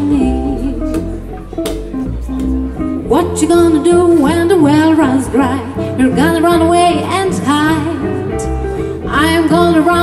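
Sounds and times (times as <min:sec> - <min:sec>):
electric guitar strumming chords: 0:00.0 - 0:10.0
plucked double bass: 0:00.0 - 0:10.0.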